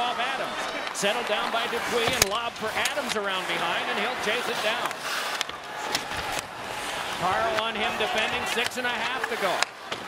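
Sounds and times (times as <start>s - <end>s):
crowd noise: 0.0s - 10.0s
hockey sticks and puck clacking: 0.8s - 10.0s
skates scraping on ice: 1.3s - 9.7s.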